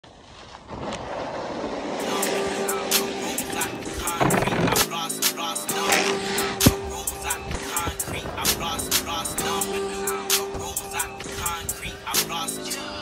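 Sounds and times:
snowboard scraping on snow: 0.1s - 9.8s
music with steady beat: 2.6s - 13.0s.

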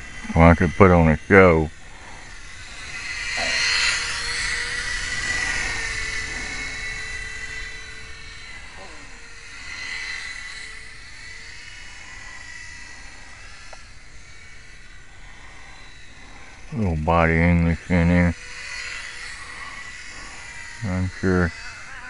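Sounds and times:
model airplane motor whining: 0.0s - 22.0s.

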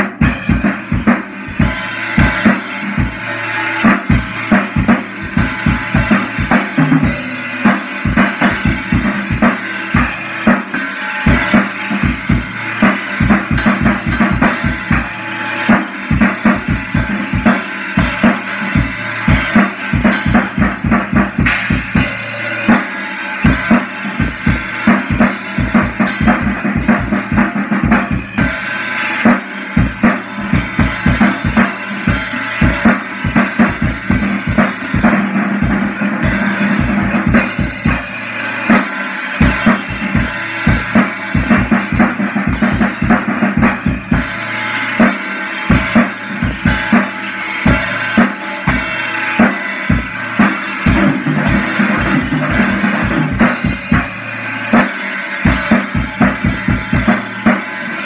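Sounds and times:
bass drum and snare hits: 0.0s - 22.9s, 23.5s - 57.8s
cymbals ringing: 0.0s - 58.0s.

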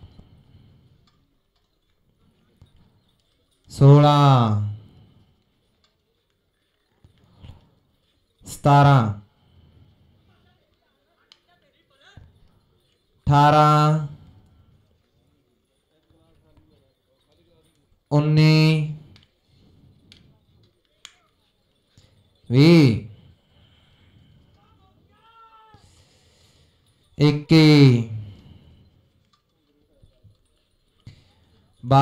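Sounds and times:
faint hoofbeats on dirt: 14.2s - 18.0s, 28.3s - 31.8s.

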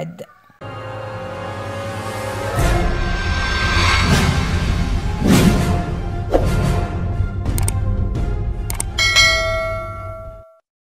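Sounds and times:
quick clicks: 7.5s - 7.8s, 8.7s - 8.9s
bright bell-like chime: 9.0s - 10.6s.

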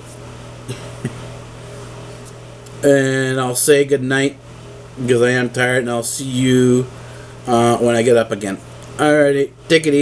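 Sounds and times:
low room hum: 0.0s - 10.0s
man talking: 2.8s - 4.4s, 5.0s - 10.0s.

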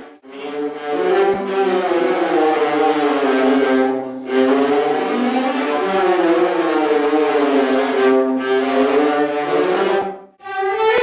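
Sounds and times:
violas bowing held notes: 0.2s - 11.0s.

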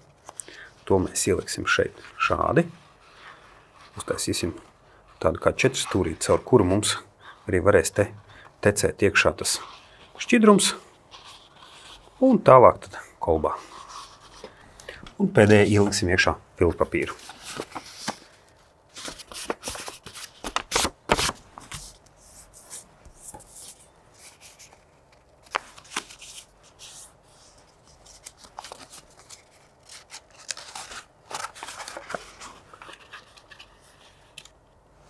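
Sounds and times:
paper crinkling and rustling: 17.0s - 22.0s, 22.6s - 34.6s.

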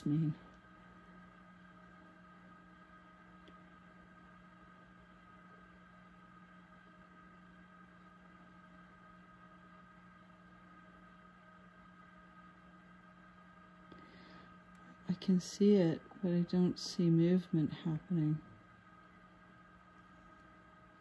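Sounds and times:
incubator humming: 0.0s - 21.0s.

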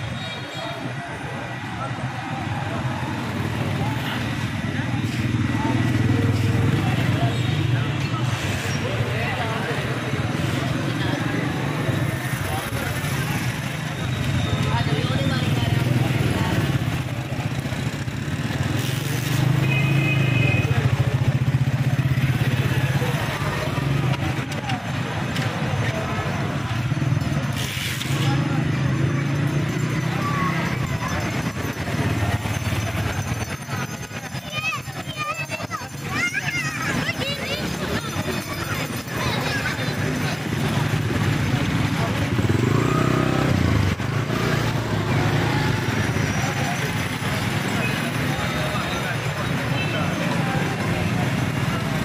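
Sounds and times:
people chattering: 0.0s - 52.0s
motorcycle and car engines passing: 0.9s - 52.0s.

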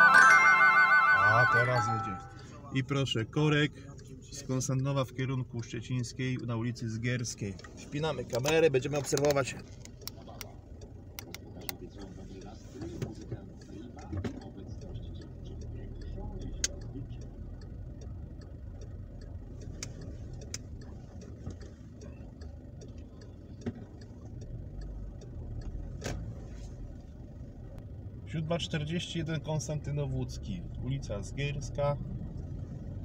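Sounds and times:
low engine and road rumble: 0.0s - 33.0s.

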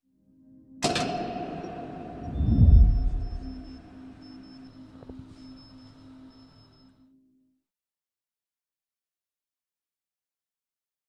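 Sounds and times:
deep low boom: 1.9s - 4.0s.

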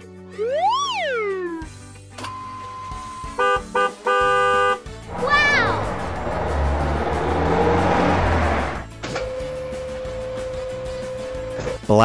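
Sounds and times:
background music: 5.0s - 12.0s
cartoon car engine noise: 5.1s - 8.9s.

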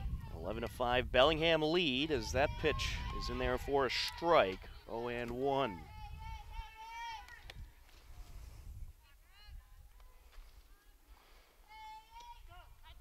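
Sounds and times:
distant high-pitched shouts and chatter: 1.8s - 7.8s, 9.0s - 13.0s.

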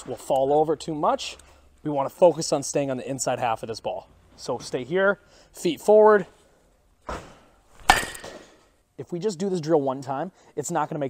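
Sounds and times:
bat cracking a ball: 7.1s - 8.5s.

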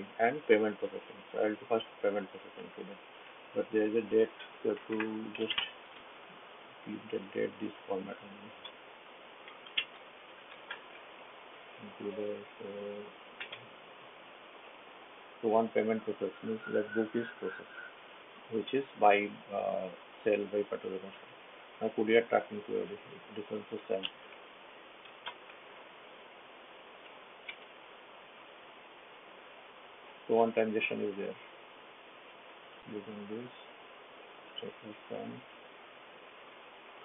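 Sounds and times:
steady background hiss: 0.0s - 37.0s
keyboard and mouse clicks: 9.4s - 10.8s, 13.4s - 13.6s, 25.0s - 25.5s.

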